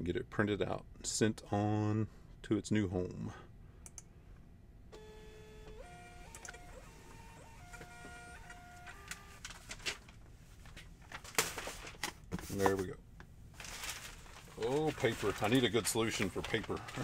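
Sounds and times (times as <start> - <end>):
label printer motor whining: 5.0 - 9.5, 15.4 - 17.0
short rustle: 13.6 - 16.8.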